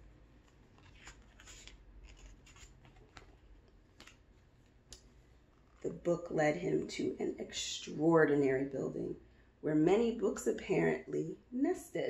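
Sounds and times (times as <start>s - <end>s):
paper page turning: 0.4s - 5.0s.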